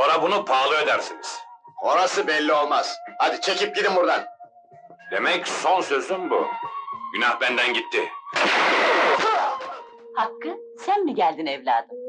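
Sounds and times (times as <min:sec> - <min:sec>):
loud gunfire blast: 0:08.4 - 0:09.4.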